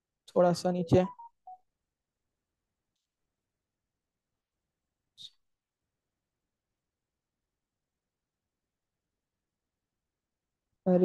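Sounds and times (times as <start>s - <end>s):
person speaking: 0.3s - 1.3s
faint electronic beeps: 0.8s - 1.6s.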